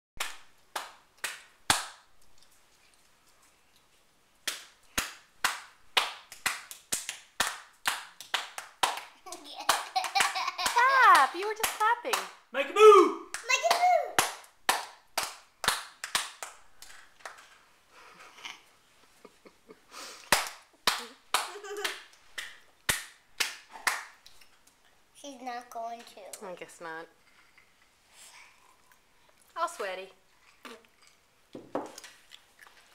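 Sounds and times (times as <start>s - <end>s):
hands clapping: 0.2s - 2.1s, 4.4s - 12.4s, 13.3s - 17.5s, 20.2s - 24.2s.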